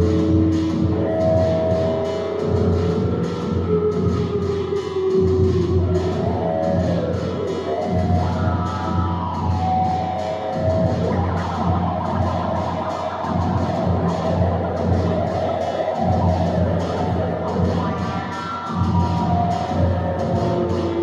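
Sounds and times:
low pulsing backing: 0:00.0 - 0:21.0.

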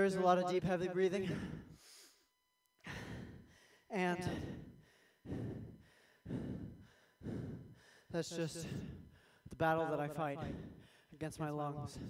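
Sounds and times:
person breathing heavily: 0:01.2 - 0:11.2.

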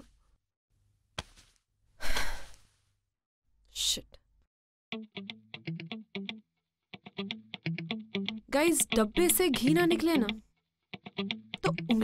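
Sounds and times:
person sighing: 0:02.0 - 0:02.6.

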